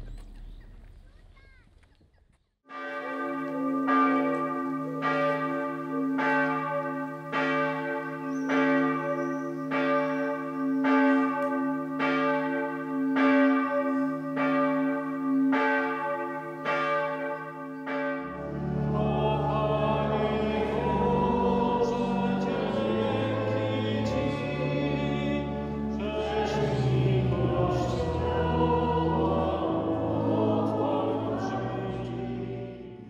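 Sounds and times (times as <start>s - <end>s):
church bells ringing: 2.7s - 33.0s
choir singing: 18.2s - 33.0s.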